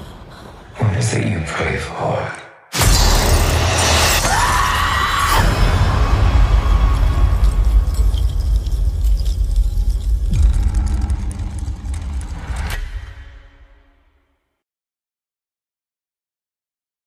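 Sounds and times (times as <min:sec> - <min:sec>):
loud crashing hit with shrill tone: 0:02.7 - 0:08.2
heavy low rumble: 0:05.5 - 0:13.2.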